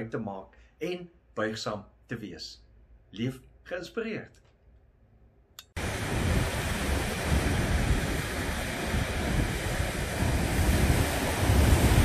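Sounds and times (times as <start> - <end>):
surf breaking on rocks: 5.8 - 12.0
wind buffeting microphone: 5.8 - 12.0.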